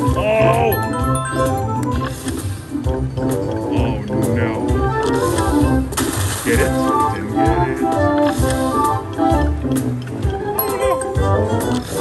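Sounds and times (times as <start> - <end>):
slot machine game music: 0.0 - 12.0.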